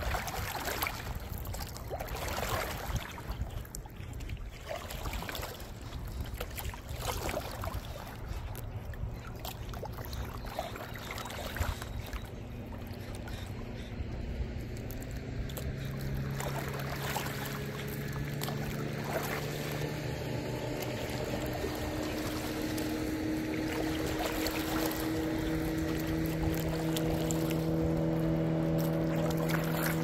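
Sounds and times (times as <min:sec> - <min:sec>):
boat motor running: 0:00.0 - 0:30.0
water noise: 0:00.0 - 0:30.0.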